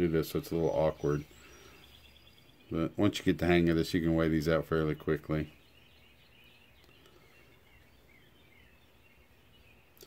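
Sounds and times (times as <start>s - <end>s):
faint high chirps: 0.1s - 3.8s.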